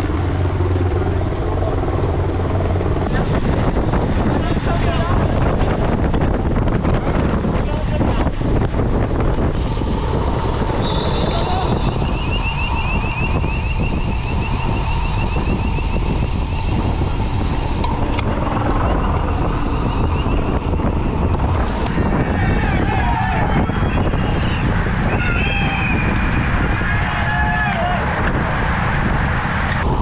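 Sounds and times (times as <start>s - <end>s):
tyre and road noise: 0.0s - 30.0s
wind buffeting microphone: 0.0s - 30.0s.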